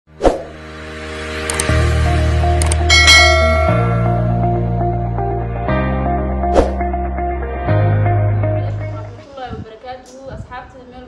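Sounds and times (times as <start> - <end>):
rising swoosh: 0.1 - 8.2
synth music: 0.4 - 9.2
sharp hit: 2.8 - 4.8
short pings: 2.9 - 4.2
bright chime hit: 2.9 - 4.4.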